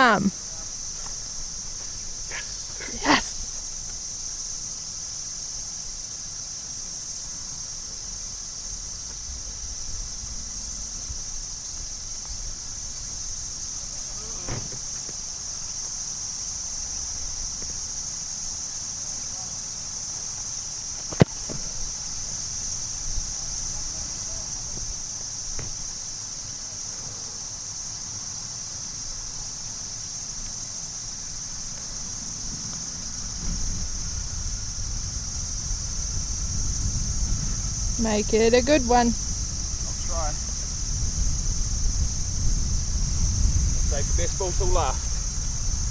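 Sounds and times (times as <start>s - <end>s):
low wind rumble: 0.0s - 15.4s, 30.7s - 45.9s
high-pitched insect drone: 0.0s - 45.9s
boot kicking a ball: 21.0s - 21.8s.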